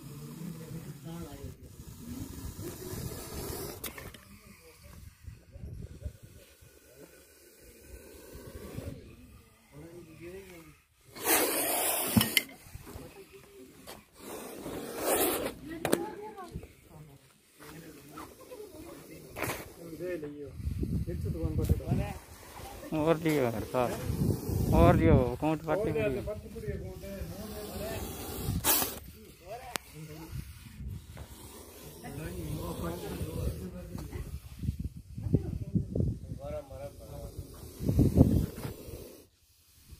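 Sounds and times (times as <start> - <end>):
snake hissing: 0.0 - 39.9
voices talking: 8.5 - 34.6.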